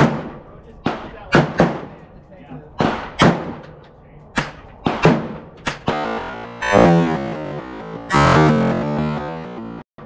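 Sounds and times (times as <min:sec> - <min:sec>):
gunshots with echoing tails: 0:00.0 - 0:02.0, 0:02.8 - 0:03.7, 0:04.3 - 0:08.7.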